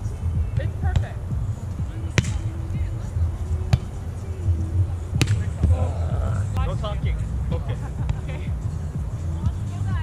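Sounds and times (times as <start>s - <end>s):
volleyball slap: 2.1s - 2.4s, 5.2s - 5.8s.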